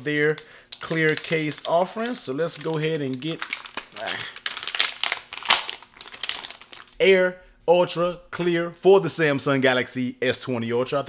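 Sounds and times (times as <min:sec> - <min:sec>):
packaging crinkling: 0:00.7 - 0:07.0.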